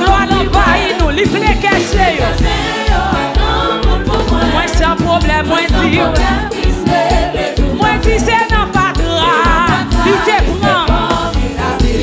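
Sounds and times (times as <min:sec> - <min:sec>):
backing singers: 0:00.0 - 0:12.0
band with bass beat: 0:00.0 - 0:12.0
woman singing lead: 0:00.0 - 0:12.0.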